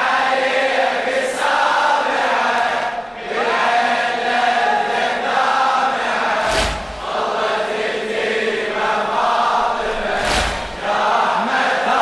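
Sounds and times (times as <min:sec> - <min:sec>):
chorus chanting a slow lament: 0:00.0 - 0:12.0.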